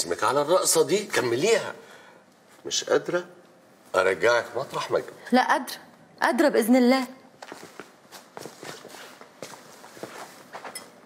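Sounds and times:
soft footsteps: 7.4 - 11.0.

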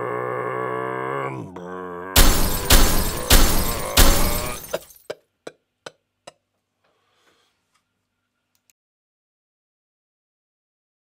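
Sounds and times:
low drawn-out groan: 0.0 - 2.2.

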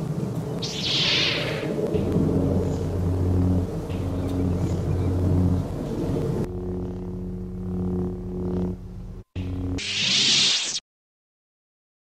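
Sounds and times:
lightsaber electric hum: 0.0 - 10.8.

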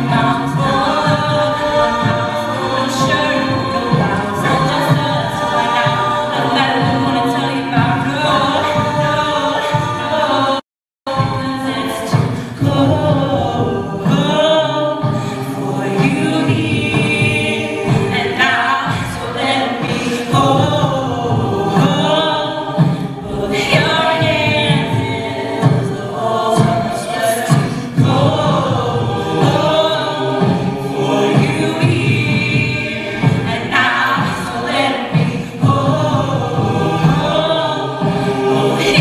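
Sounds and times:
a cappella vocal backing: 0.0 - 39.0
female soloist singing: 0.0 - 39.0.

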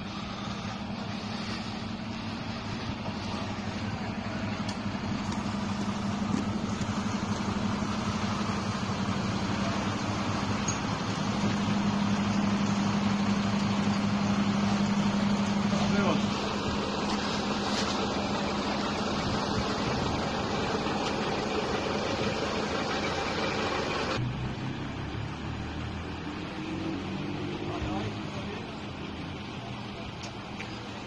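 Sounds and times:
diesel engines running: 0.0 - 31.0.

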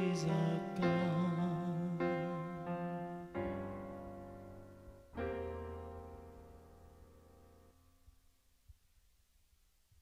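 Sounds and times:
piano chord ringing: 0.0 - 8.0.

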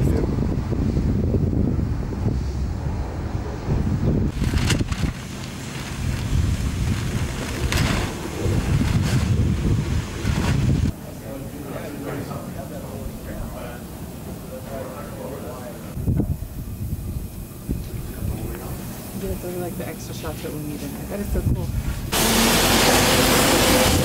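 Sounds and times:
wind buffeting microphone: 0.0 - 11.0, 15.9 - 22.2.

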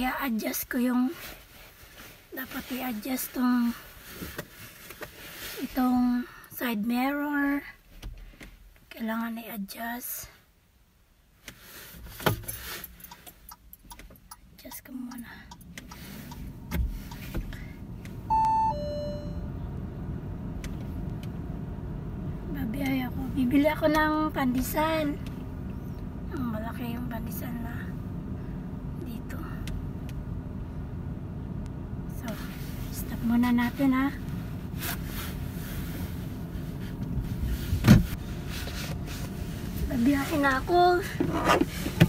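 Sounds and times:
car cabin rumble: 13.8 - 42.0
two-note electronic chime: 18.3 - 19.5.

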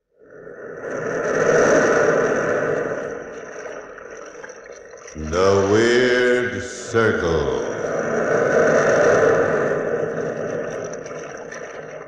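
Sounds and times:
sea waves rushing: 5.2 - 12.0.

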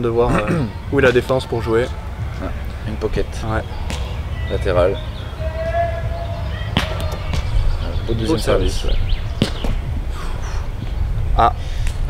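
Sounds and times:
low wind rumble: 0.0 - 12.0
ball struck by hand: 3.8 - 4.2, 6.7 - 7.6, 9.4 - 9.8.

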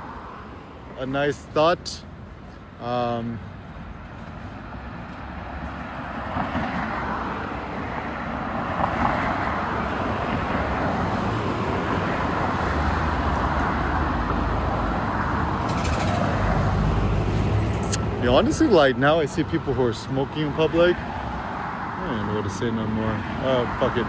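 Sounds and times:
road traffic rumble: 0.0 - 24.0.

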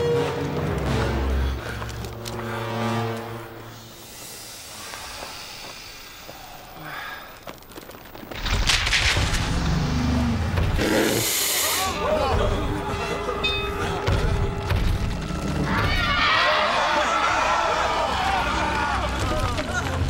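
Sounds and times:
orchestral music: 0.0 - 4.1, 9.8 - 20.0
high hiss: 3.7 - 7.4, 10.8 - 12.0.

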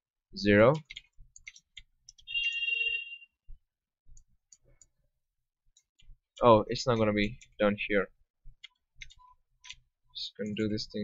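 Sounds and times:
keyboard keystrokes: 0.7 - 2.3.

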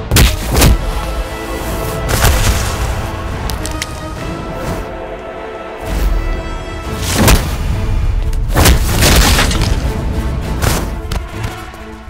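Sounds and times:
dramatic orchestral music: 0.0 - 12.0.

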